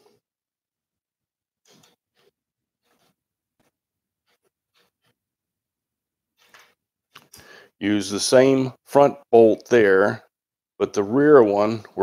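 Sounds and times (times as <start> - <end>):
faint scrapes and clicks of bolts: 1.6 - 5.2.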